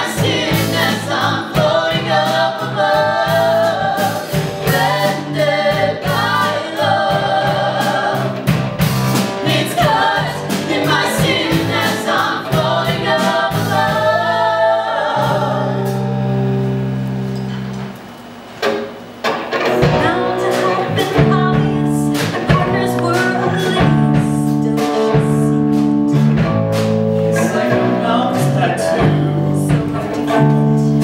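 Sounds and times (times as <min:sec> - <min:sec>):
person singing with band: 0:00.0 - 0:17.5, 0:19.6 - 0:26.3, 0:27.2 - 0:31.0
drum hits: 0:15.2 - 0:27.2.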